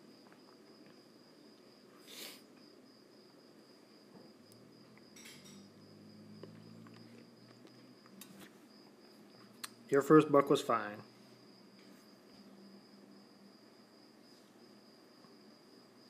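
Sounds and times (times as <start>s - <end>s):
faint high-pitched whine: 0.0s - 16.0s
faint low hum: 0.0s - 16.0s.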